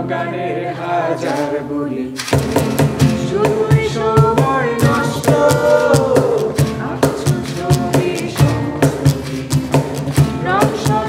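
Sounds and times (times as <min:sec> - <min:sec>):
man and woman singing: 0:00.0 - 0:02.3, 0:03.1 - 0:11.0
acoustic guitar: 0:00.0 - 0:11.0
cajon strikes: 0:01.2 - 0:01.6, 0:02.2 - 0:11.0.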